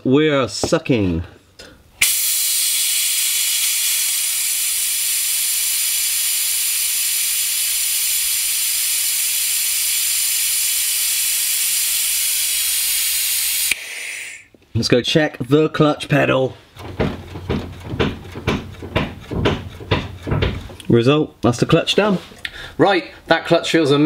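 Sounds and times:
air-powered vacuum bleeder hissing: 0:02.0 - 0:14.6.

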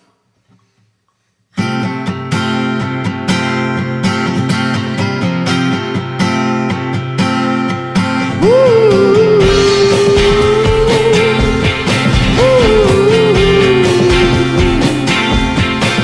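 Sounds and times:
acoustic guitar strumming chords: 0:01.6 - 0:16.0.

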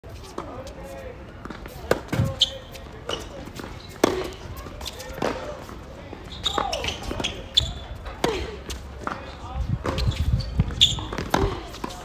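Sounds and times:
rackets striking tennis ball: 0:06.5 - 0:12.0.

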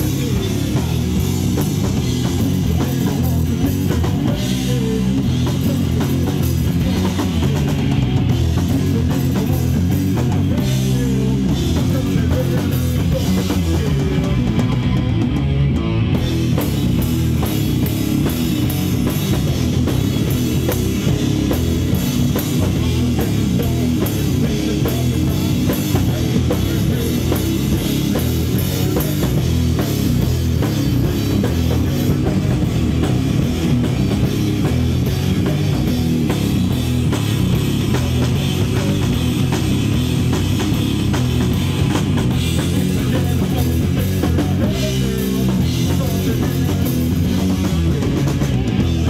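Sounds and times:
bass guitar: 0:00.0 - 0:49.0
drum kit: 0:00.0 - 0:49.0
electric guitar: 0:00.0 - 0:49.0
heavy metal band playing: 0:00.0 - 0:49.0.

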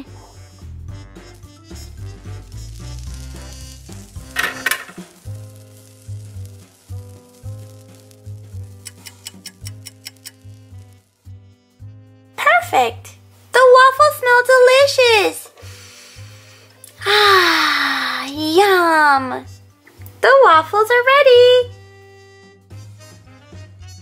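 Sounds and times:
soft background music: 0:00.0 - 0:24.0
waffles sizzling: 0:00.1 - 0:20.9, 0:22.2 - 0:23.9.

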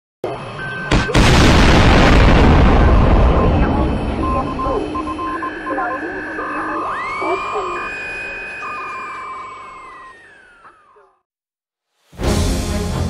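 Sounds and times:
beeps: 0:00.2 - 0:01.5, 0:02.3 - 0:10.9
steady electronic tones: 0:00.2 - 0:11.2
loud boom: 0:00.9 - 0:05.4.

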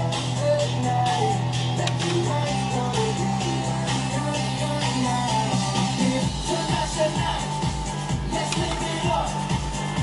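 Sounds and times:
pop dance music through speakers: 0:00.0 - 0:10.0.

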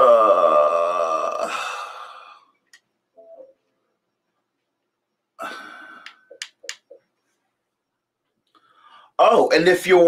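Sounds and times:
sharp clicks: 0:06.0 - 0:07.0
breathy exhale: 0:08.6 - 0:09.2.

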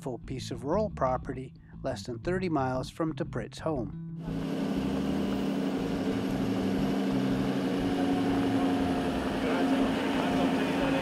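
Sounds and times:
truck engine running: 0:04.2 - 0:11.0.

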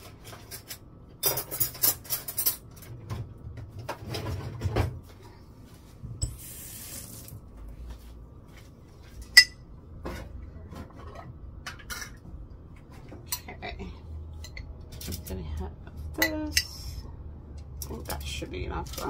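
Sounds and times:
cutlery and dishes clattering: 0:00.2 - 0:03.2, 0:10.8 - 0:12.2.

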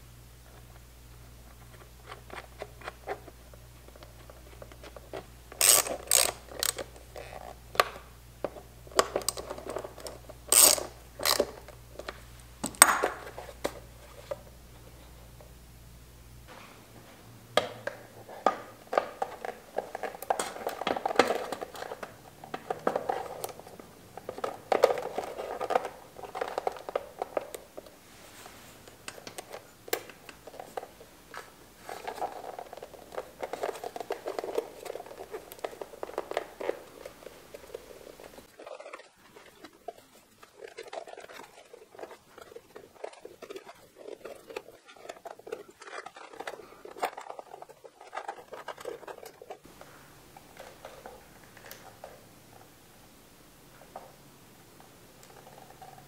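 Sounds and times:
rubber rubbing and scraping: 0:01.4 - 0:07.7, 0:09.2 - 0:12.2, 0:30.4 - 0:49.9.

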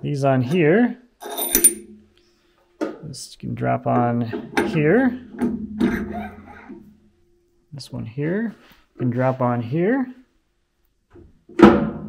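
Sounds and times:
steel rings clinking: 0:01.2 - 0:02.0
bright metallic ring: 0:01.2 - 0:02.1.

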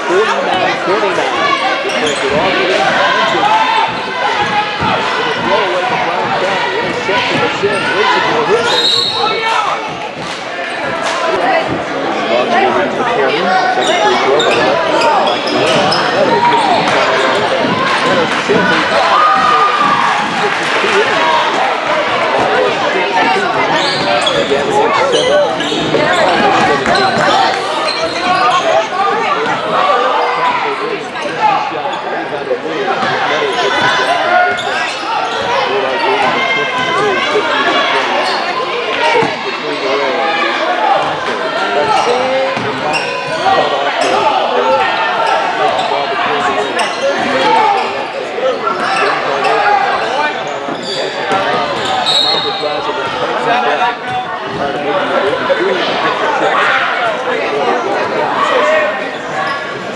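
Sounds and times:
voices echoing in gym: 0:00.0 - 0:59.9.

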